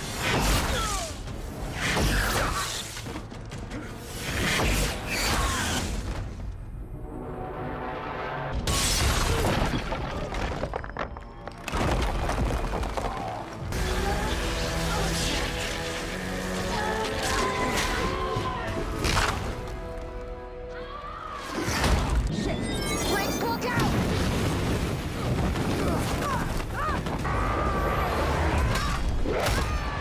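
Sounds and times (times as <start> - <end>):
action film music score: 0.0 - 30.0.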